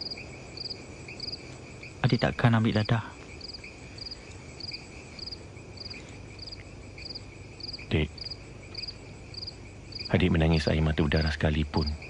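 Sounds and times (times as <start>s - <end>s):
crickets chirping: 0.0s - 12.0s
steady insect trill: 0.0s - 12.0s.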